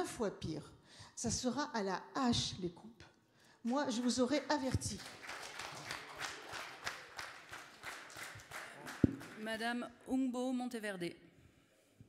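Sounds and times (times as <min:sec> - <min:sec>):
scattered hand claps: 0:03.7 - 0:09.6.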